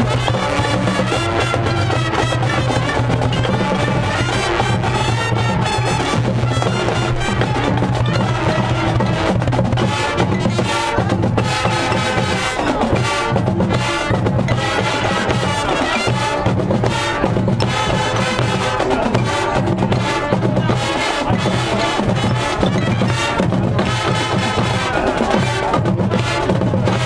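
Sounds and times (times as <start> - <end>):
brass: 0.0 - 27.0
marching drums and percussion: 0.0 - 27.0.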